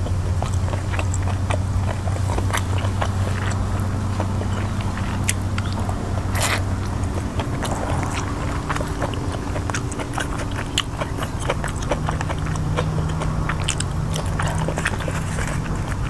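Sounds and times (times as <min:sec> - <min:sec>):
low steady hum: 0:00.0 - 0:16.0
person chewing with mouth clicks: 0:00.0 - 0:16.0.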